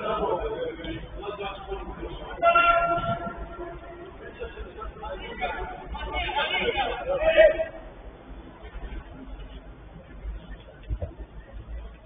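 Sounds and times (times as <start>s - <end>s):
steady horn-like tone: 2.4s - 5.0s.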